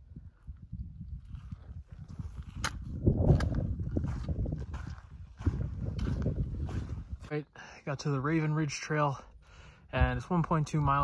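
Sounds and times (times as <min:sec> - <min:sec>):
wind rumble on microphone: 0:00.0 - 0:07.3, 0:09.9 - 0:11.0
footsteps on rocky dirt trail: 0:00.4 - 0:09.2, 0:10.0 - 0:11.0.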